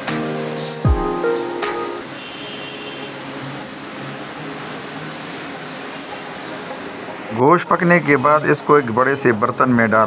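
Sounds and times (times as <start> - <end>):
pot stewing with steady hiss: 2.0 - 10.0.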